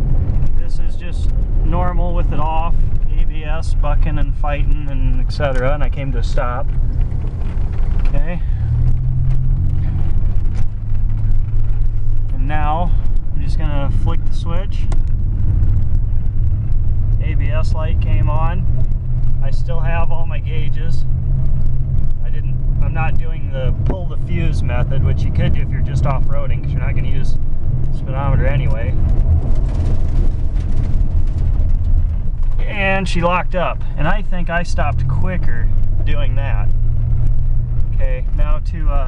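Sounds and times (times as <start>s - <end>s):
engine low rumble: 0.0s - 39.0s
road and tyre noise: 0.0s - 39.0s
tyres on gravel: 22.8s - 39.0s.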